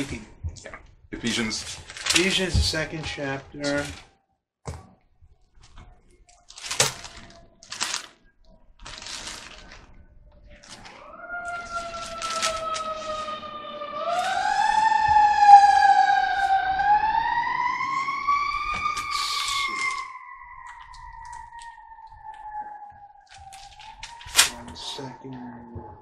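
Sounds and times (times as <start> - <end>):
paper pages rustling: 1.3 - 4.1, 5.6 - 13.3, 23.3 - 24.8
emergency vehicle siren wailing: 9.6 - 26.0.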